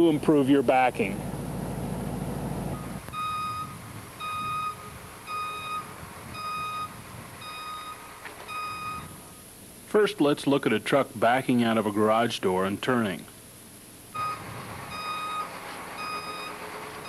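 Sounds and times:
low steady rumble: 0.0 - 10.0
truck backup alarm beeping: 1.2 - 9.4, 14.1 - 17.0.

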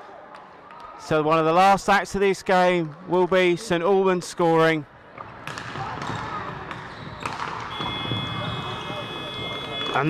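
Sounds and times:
players' voices: 0.0 - 10.0
hockey stick hitting ball: 5.2 - 8.8
electronic hooter: 7.7 - 10.0.

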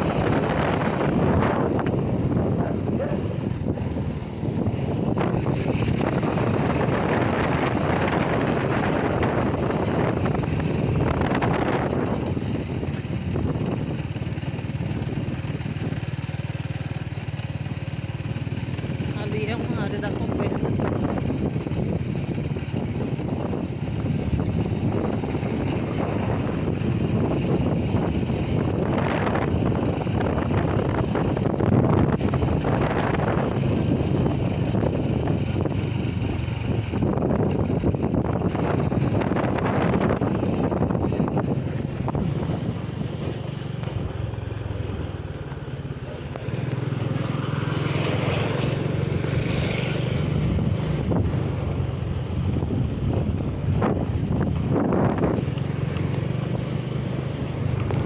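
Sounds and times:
wind buffeting microphone: 0.0 - 16.8, 18.8 - 58.0
motorcycle engine running: 0.0 - 58.0.

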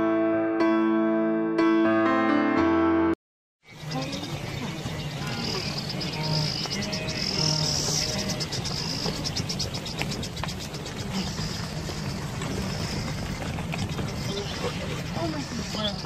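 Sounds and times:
insects chirring in pulsing trill: 3.7 - 9.8.

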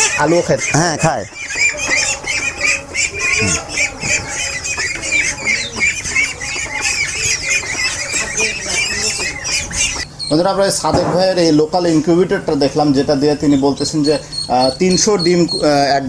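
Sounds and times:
chicks and ducklings peeping: 0.0 - 16.0.

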